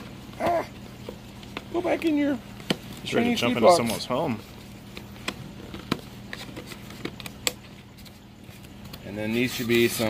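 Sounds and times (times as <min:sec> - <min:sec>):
packing clicks and taps: 0:04.9 - 0:07.8.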